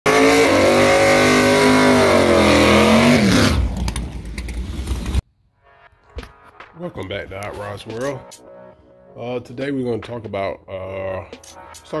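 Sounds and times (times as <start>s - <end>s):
car engine revving: 0.1s - 5.2s.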